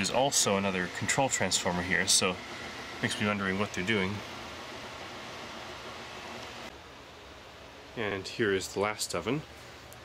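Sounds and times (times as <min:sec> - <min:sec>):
workshop room hiss: 0:00.0 - 0:10.0.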